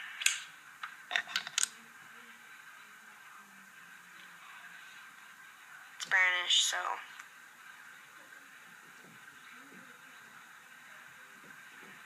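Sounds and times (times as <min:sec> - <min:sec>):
room hiss: 0:00.0 - 0:12.0
small objects clicking and tapping: 0:00.2 - 0:01.8.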